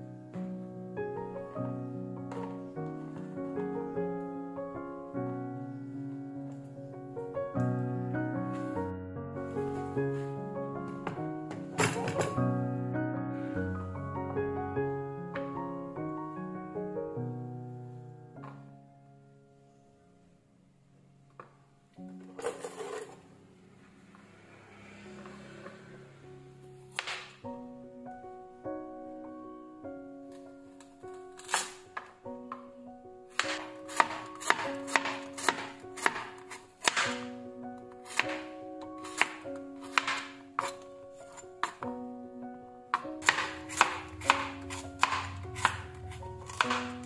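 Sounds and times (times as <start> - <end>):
soft background music: 0.0 - 47.0
handling noise scraping rustle: 22.3 - 23.3
knife chopping on board: 33.4 - 37.3, 38.1 - 40.8, 43.0 - 47.0.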